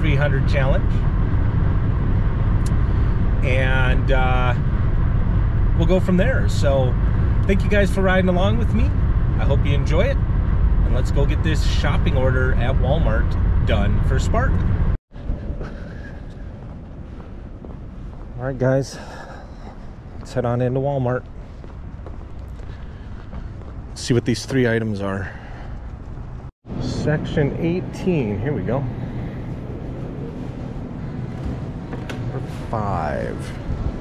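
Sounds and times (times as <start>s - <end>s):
wind buffeting microphone: 0.0s - 26.5s, 27.5s - 34.0s.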